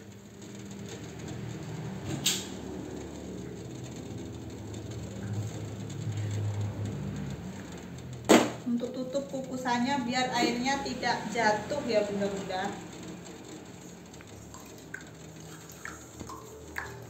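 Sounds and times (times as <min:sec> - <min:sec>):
water boiling in a pot: 0:00.0 - 0:17.0.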